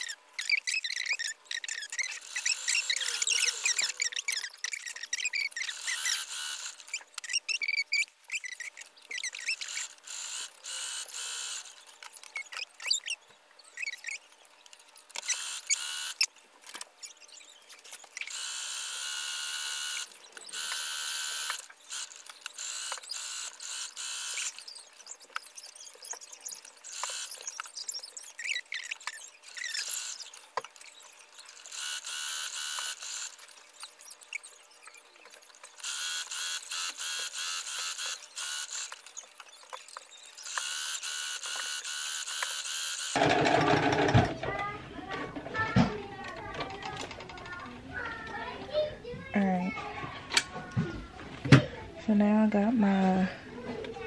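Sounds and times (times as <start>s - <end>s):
sewing machine stitching: 43.1s - 44.4s.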